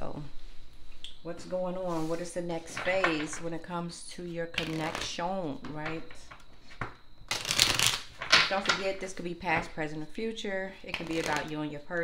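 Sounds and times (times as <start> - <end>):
cards shuffling: 7.3 - 8.1, 10.9 - 11.6.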